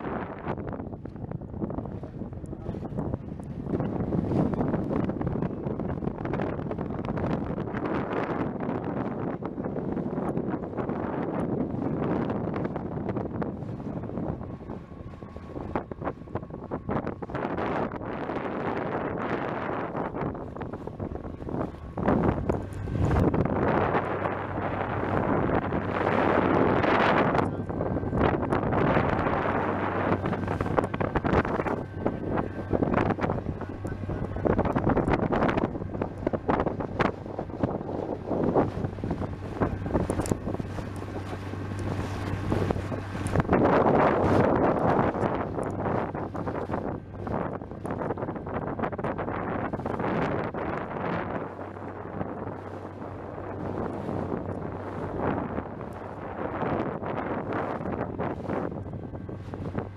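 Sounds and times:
steady low hum: 0.0s - 59.9s
water splashing along boat hull: 0.0s - 59.9s
wind buffeting microphone: 0.0s - 59.9s.

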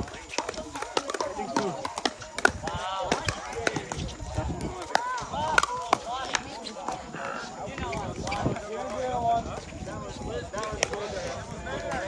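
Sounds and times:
paddles hitting plastic ball: 0.0s - 7.1s.

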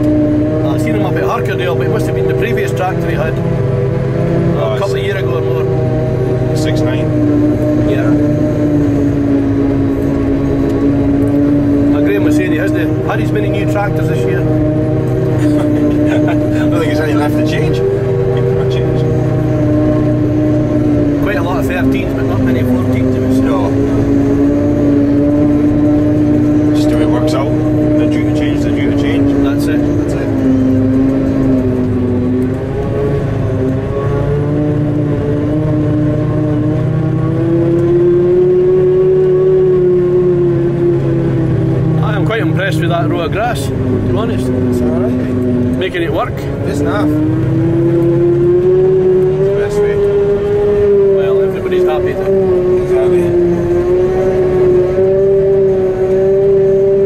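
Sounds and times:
harvester machine drone: 0.0s - 57.0s.

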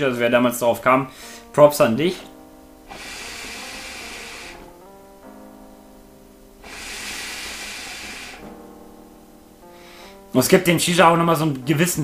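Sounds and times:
hookah draw hissing: 2.8s - 4.9s, 6.6s - 8.7s.

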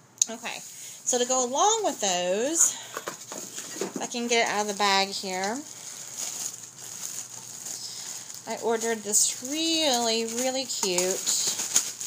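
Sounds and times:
bag rustling: 1.2s - 12.0s.

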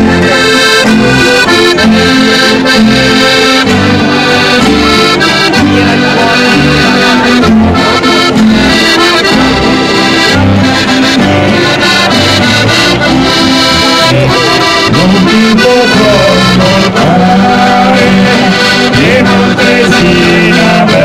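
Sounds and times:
accordion folk tune: 0.0s - 21.0s.

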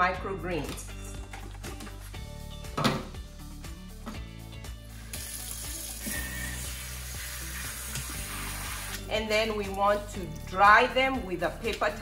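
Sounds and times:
background music: 0.0s - 12.0s
faucet water running: 4.8s - 10.4s.

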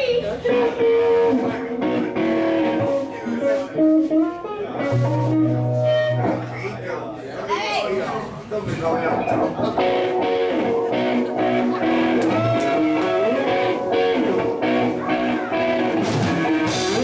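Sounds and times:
electric guitars playing: 0.0s - 7.0s, 9.1s - 17.0s
voices talking: 0.0s - 17.0s.

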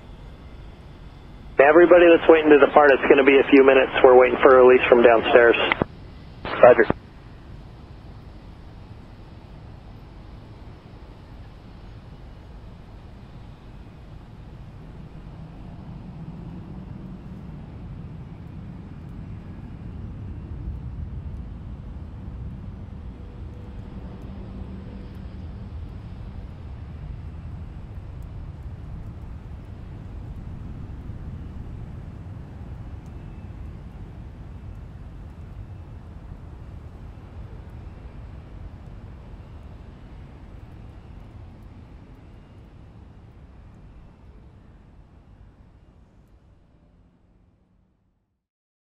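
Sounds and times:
jet engines rumbling: 0.6s - 7.0s.

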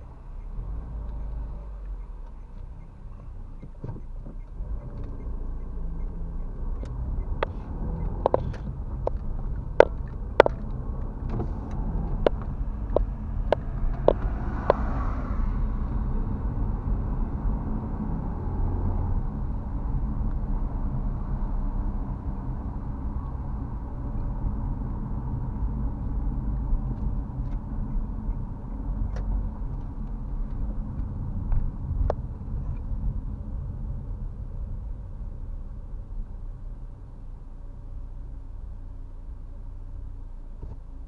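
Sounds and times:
car engine and road rumble: 0.0s - 41.0s.

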